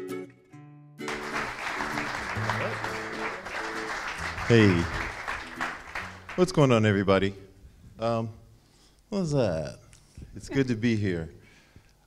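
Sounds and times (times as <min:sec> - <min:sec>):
plucked-string music: 0:00.0 - 0:06.4
audience applauding: 0:01.0 - 0:07.0.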